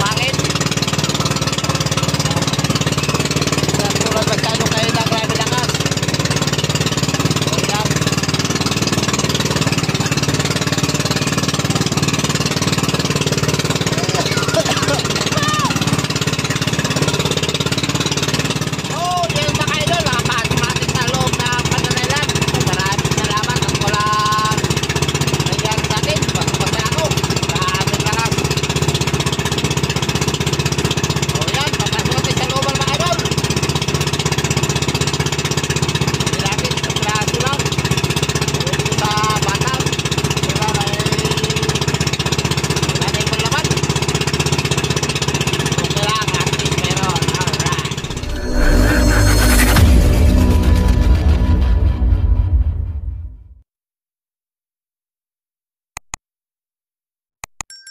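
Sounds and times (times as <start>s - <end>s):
boat engine running: 0.0s - 53.3s
man's voice: 3.8s - 5.8s.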